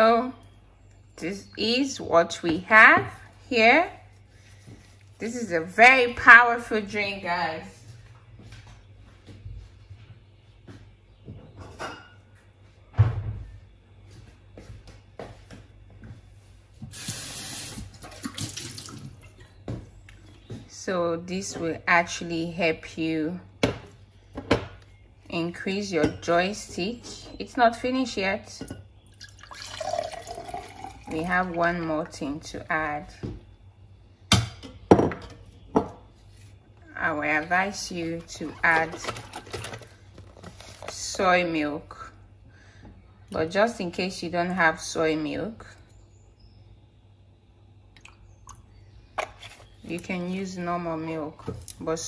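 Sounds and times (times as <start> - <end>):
water running: 16.9 - 19.4, 29.2 - 31.9.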